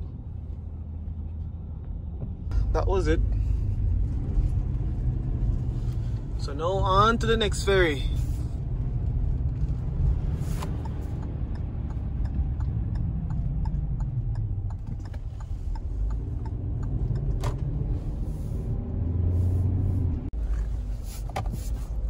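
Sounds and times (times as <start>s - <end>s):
tyre and engine rumble: 0.0s - 22.0s.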